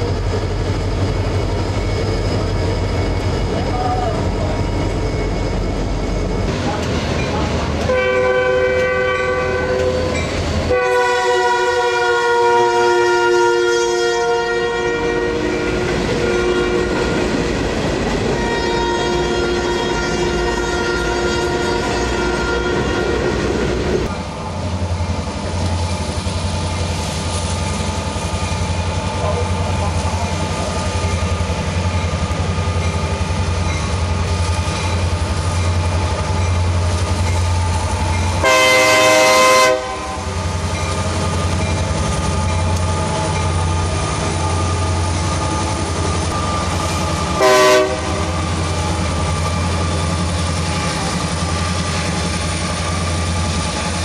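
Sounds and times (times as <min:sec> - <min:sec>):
diesel locomotive rumbling: 0:00.0 - 0:54.0
locomotive air horn: 0:07.9 - 0:17.5, 0:18.3 - 0:23.4, 0:38.4 - 0:40.4, 0:47.4 - 0:48.5.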